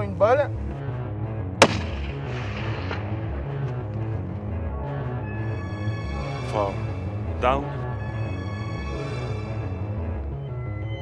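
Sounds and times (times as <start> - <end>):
background music: 0.0 - 11.0
rifle shot with echo: 1.6 - 3.8.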